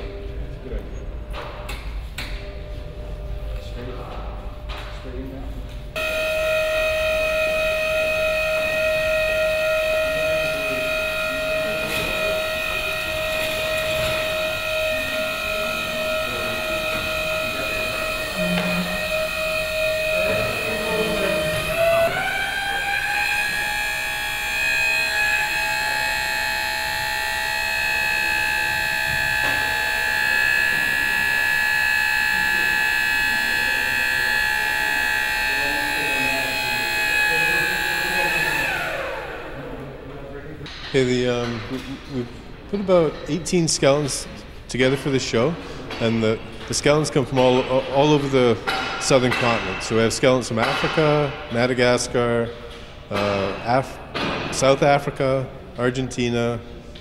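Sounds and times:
lift motor and pump whining: 0:00.0 - 0:57.0.

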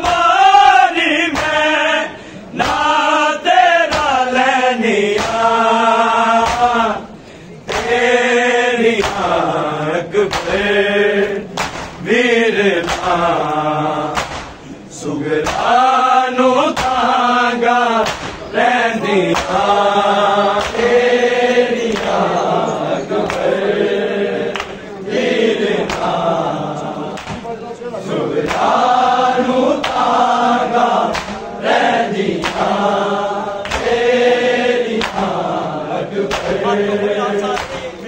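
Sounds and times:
men chanting a lament: 0:00.0 - 0:38.0
hands slapping chests: 0:01.3 - 0:01.7, 0:02.6 - 0:03.0, 0:03.8 - 0:04.2, 0:05.1 - 0:05.6, 0:06.4 - 0:06.8, 0:07.7 - 0:08.0, 0:09.0 - 0:09.4, 0:10.3 - 0:12.0, 0:12.8 - 0:14.7, 0:15.4 - 0:15.8, 0:16.7 - 0:17.1, 0:18.0 - 0:18.5, 0:19.3 - 0:19.8, 0:20.5 - 0:21.0, 0:21.9 - 0:22.3, 0:23.2 - 0:23.6, 0:24.4 - 0:24.8, 0:25.8 - 0:26.2, 0:27.1 - 0:27.5, 0:28.4 - 0:28.9, 0:29.8 - 0:30.3, 0:31.0 - 0:31.6, 0:32.3 - 0:33.0, 0:33.6 - 0:34.1, 0:34.9 - 0:35.4, 0:36.2 - 0:36.6, 0:37.4 - 0:38.0.

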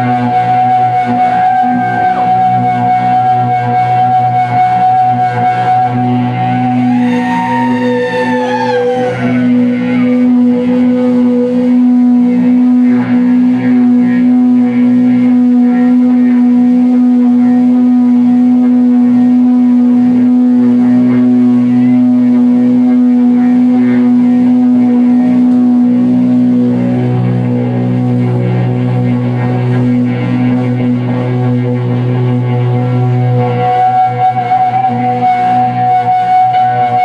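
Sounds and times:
electric guitar and bass droning: 0:00.0 - 0:37.0
live rock band: 0:00.0 - 0:37.0.

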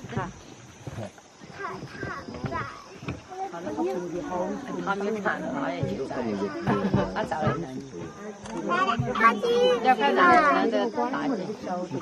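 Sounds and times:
people talking: 0:00.0 - 0:00.4, 0:01.6 - 0:12.0.

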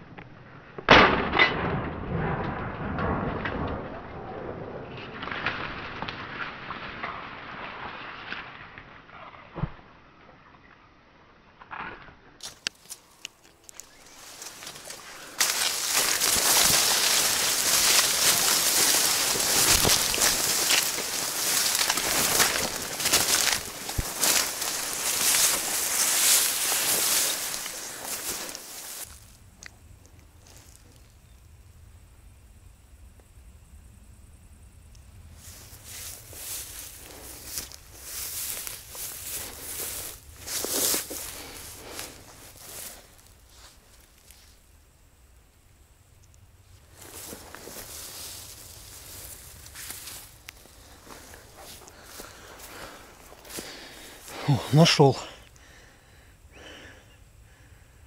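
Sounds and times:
grass and reeds rustling: 0:12.4 - 0:31.4, 0:35.2 - 0:57.7.

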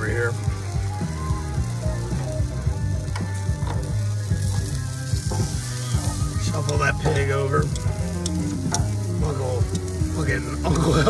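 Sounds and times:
chicken wings sizzling on grill: 0:00.0 - 0:11.0
metal tongs clicking on grate: 0:06.6 - 0:08.9, 0:09.6 - 0:10.0.

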